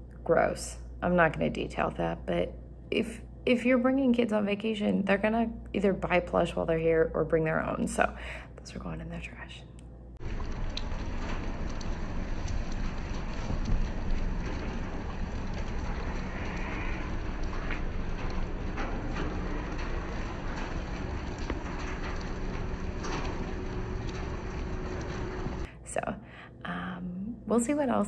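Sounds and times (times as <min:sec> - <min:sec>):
outdoor noise with low hum: 0:00.0 - 0:28.0.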